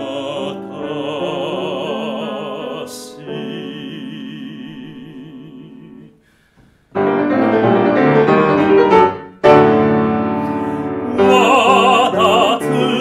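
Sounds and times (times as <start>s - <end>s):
grand piano chords: 6.9s - 13.0s
man singing held note with vibrato: 11.0s - 13.0s.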